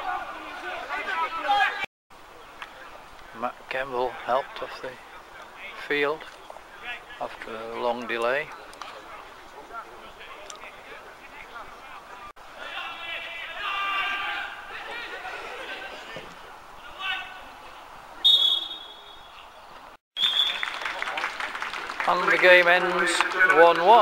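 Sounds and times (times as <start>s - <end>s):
distant players shouting: 10.6s - 19.5s
referee's whistle blasts: 18.2s - 19.4s, 20.2s - 20.6s.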